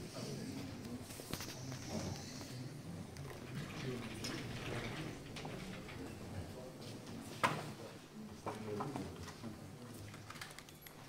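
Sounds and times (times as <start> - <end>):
faint clicks and rustles: 0.6 - 7.8, 8.4 - 11.0.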